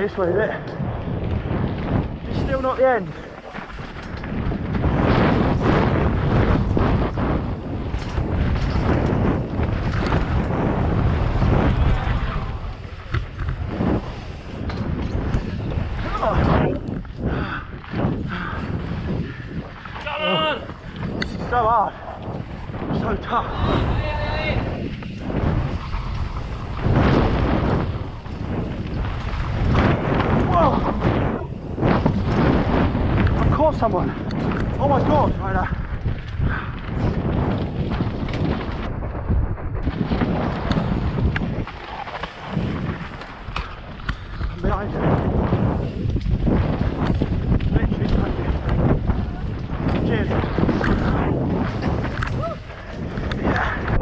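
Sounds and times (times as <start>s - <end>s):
bike rattling and knocking: 0.0s - 54.0s
tyres rumbling over rocks: 0.0s - 54.0s
wind buffeting microphone: 0.0s - 54.0s.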